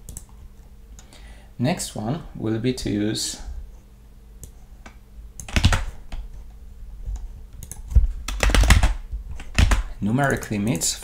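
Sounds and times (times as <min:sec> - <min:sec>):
faint low hum: 0:00.0 - 0:11.0
keyboard keys clicking: 0:05.4 - 0:05.9, 0:07.6 - 0:10.9.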